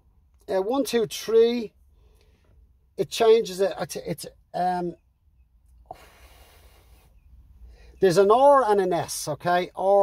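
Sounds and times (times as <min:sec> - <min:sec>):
soft breathing out: 0:05.9 - 0:08.0.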